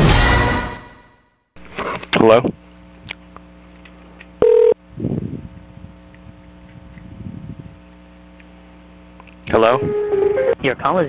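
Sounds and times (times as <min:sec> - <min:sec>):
telephone beep: 0:04.4 - 0:04.8.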